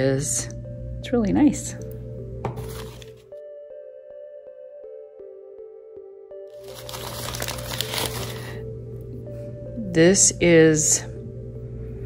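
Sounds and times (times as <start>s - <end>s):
packing paper crinkling: 2.6s - 3.3s, 6.6s - 8.6s.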